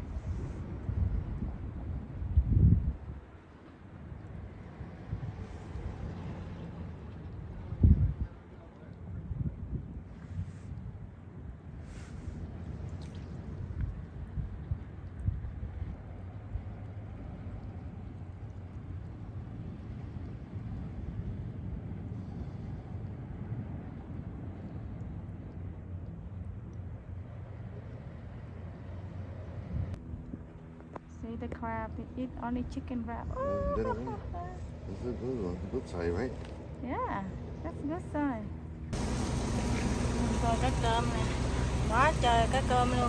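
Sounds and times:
wind rumbling on microphone: 0.0 - 31.1, 31.8 - 37.7.

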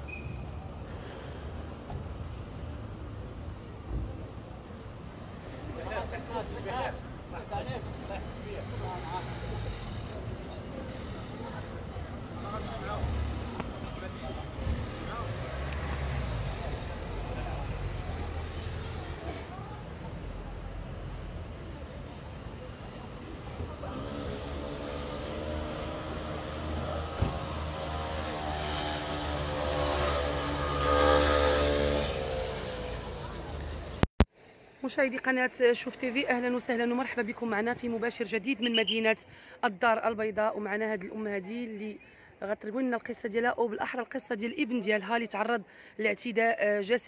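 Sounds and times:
low rumble of traffic: 0.0 - 47.0.

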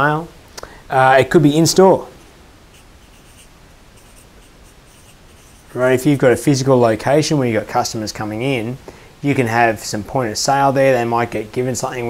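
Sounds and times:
soft scratchy rustles: 2.1 - 5.8.

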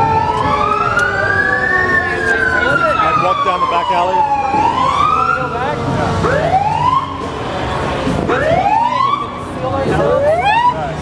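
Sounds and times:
emergency siren rising sweeps: 0.0 - 7.5, 8.2 - 11.0
crowd noise: 0.0 - 11.0.

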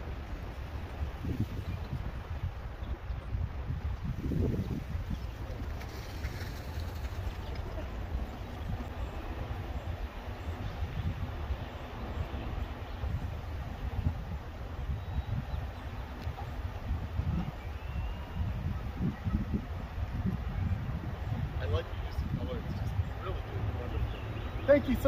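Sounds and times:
faint outdoor background noise: 0.0 - 25.0
wind buffeting microphone: 0.0 - 25.0.

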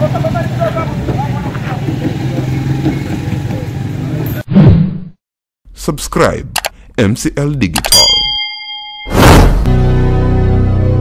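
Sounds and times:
vehicle engines humming: 0.0 - 4.4.

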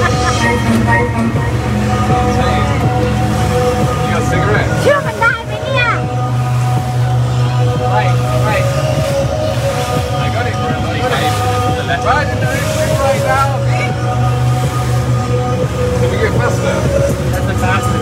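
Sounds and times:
music playing: 0.0 - 18.0
speedboat engine droning: 0.0 - 18.0.

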